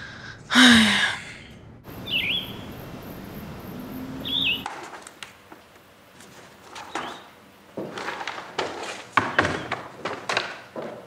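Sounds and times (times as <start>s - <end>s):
steady background hiss: 0.0s - 11.0s
small bird warbling chirp: 2.0s - 2.8s, 4.0s - 4.7s.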